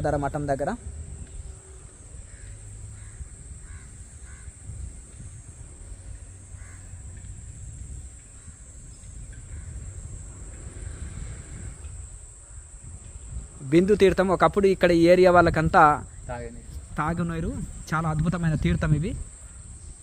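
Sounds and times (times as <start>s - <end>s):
low steady rumble: 0.0s - 20.0s
short bird calls: 1.3s - 4.7s.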